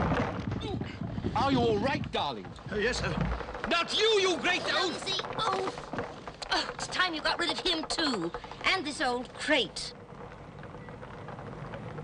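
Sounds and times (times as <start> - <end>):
faint street noise: 0.0 - 12.0.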